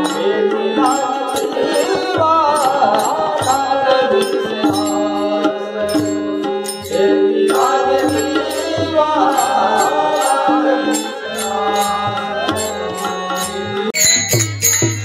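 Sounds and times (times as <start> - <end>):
man singing: 0.0 - 14.1
harmonium: 0.0 - 15.0
drum beat: 0.8 - 7.0.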